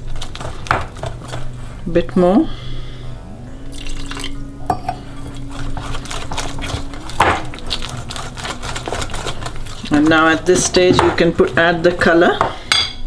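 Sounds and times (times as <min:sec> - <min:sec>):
wet stirring of batter: 0:05.0 - 0:12.4
whisk knock on bowl: 0:10.2 - 0:11.5.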